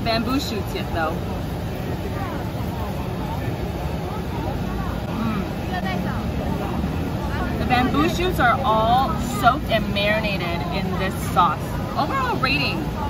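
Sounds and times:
faint chatter of passers-by: 0.0 - 13.0.

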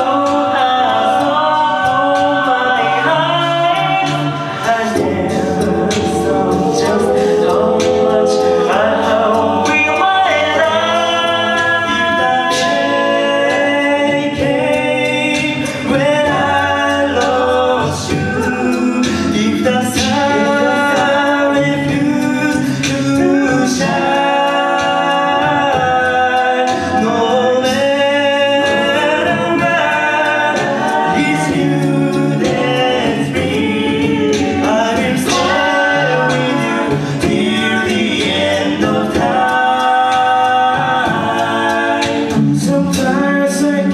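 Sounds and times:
male a cappella group singing: 0.0 - 43.9
vocal percussion hits: 0.0 - 43.9.

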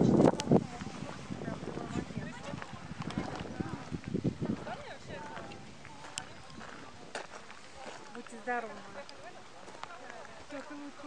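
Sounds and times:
distant people talking: 0.3 - 11.0.

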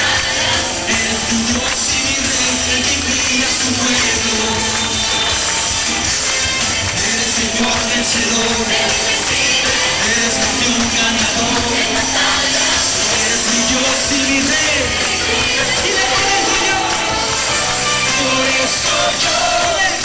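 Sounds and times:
congregation clapping: 0.0 - 20.0
congregation singing along: 0.0 - 20.0
live worship music: 0.0 - 20.0.

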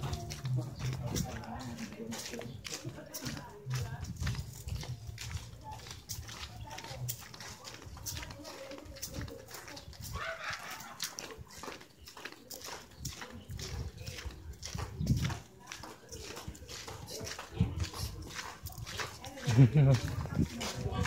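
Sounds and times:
footsteps on concrete: 0.0 - 21.0.

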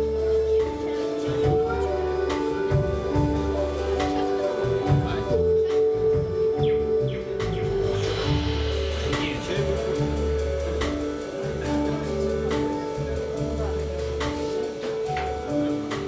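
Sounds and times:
drums: 0.0 - 16.0
electric bass notes: 0.0 - 16.0
keyboard and synthesizer chords: 0.0 - 16.0
cymbal strokes: 7.4 - 16.0.

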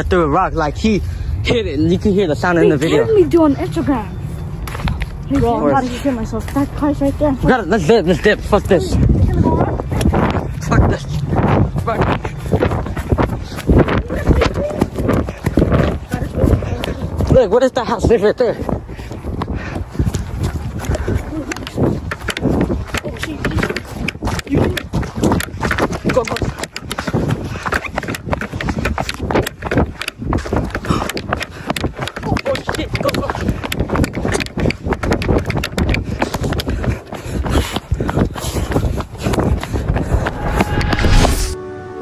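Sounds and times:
running footsteps on pavement: 0.0 - 41.6
microphone handling rubbing: 38.0 - 41.6.

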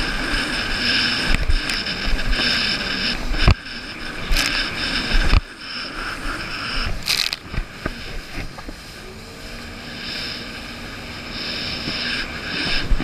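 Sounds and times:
jet ski engine running: 0.0 - 13.0
water noise: 0.0 - 13.0
water splashing: 6.0 - 9.0.

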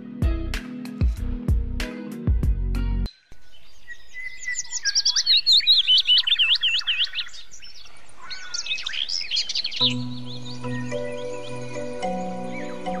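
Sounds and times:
music with low notes: 0.0 - 3.1
songbird chirping: 3.1 - 13.0.

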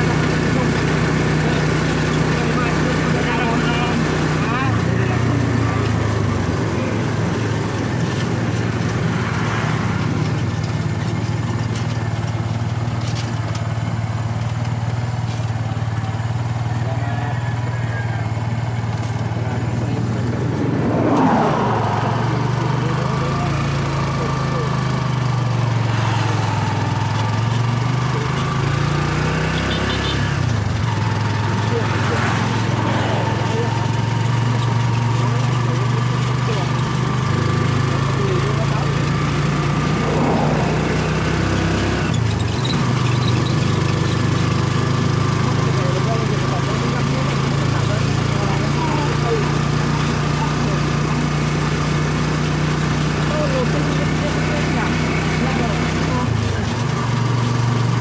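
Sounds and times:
wind and road noise: 0.0 - 45.8
vehicle engine running: 0.0 - 58.0.

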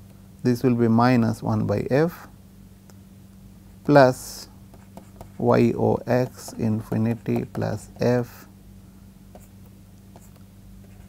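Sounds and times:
steady low hum: 0.0 - 11.0
stylus scratching on pen tablet: 4.7 - 8.2, 9.4 - 11.0.

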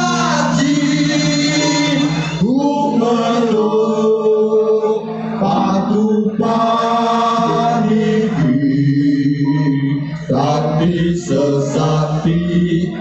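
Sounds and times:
man singing chant-like: 0.0 - 13.0.

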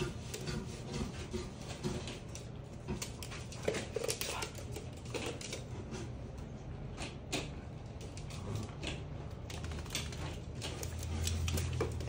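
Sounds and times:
dog claws clicking on hardwood floor: 1.6 - 6.0, 7.0 - 12.0.

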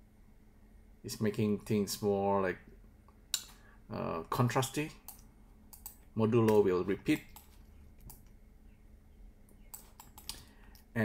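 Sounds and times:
low steady hum: 0.0 - 11.0
computer clicking: 4.9 - 8.4, 9.4 - 10.8.

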